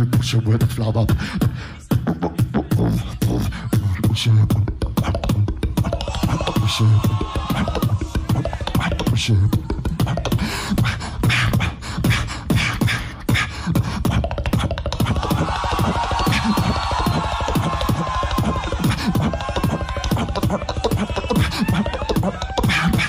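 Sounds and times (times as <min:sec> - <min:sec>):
beatboxing into microphone: 0:00.0 - 0:23.0.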